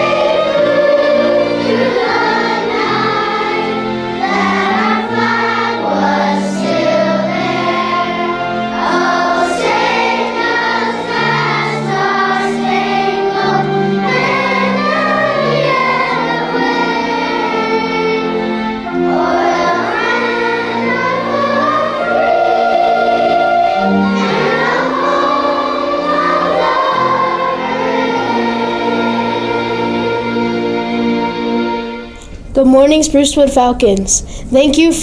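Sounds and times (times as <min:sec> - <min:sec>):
children's choir singing: 0:00.0 - 0:32.3.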